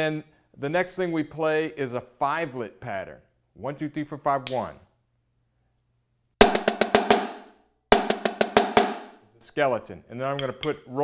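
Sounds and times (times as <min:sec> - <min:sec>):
marching snare drum: 0:06.4 - 0:09.2.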